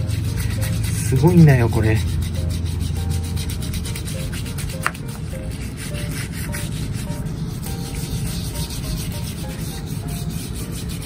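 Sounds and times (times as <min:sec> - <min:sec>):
brush scrubbing wet concrete: 0:00.0 - 0:11.0.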